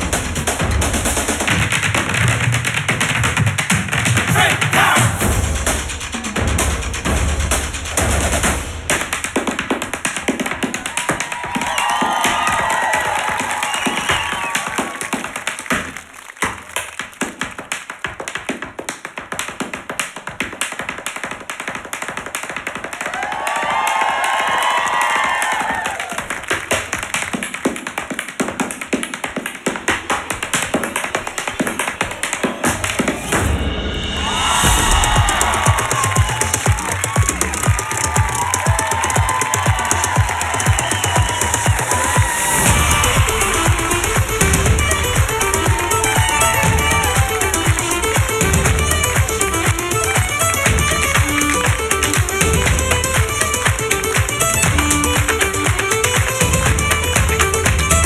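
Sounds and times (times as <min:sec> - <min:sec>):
backing music: 0:00.0 - 0:15.1, 0:32.1 - 0:58.0
dance shoes tapping on stage: 0:00.0 - 0:33.4, 0:34.8 - 0:58.0.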